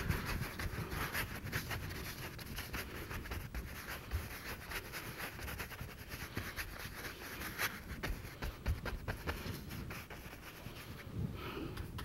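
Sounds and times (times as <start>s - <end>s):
brush scrubbing canvas: 0.0s - 11.3s.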